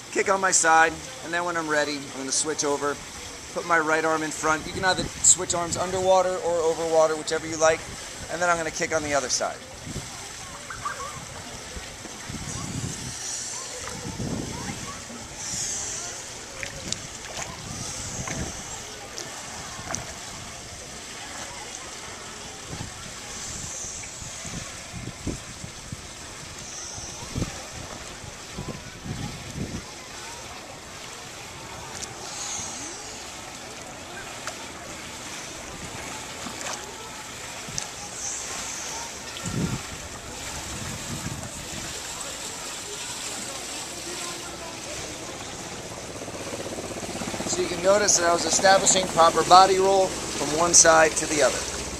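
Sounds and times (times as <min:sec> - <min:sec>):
water wash noise: 0:00.0 - 0:51.9
swimmer kicking splashes: 0:00.8 - 0:51.9.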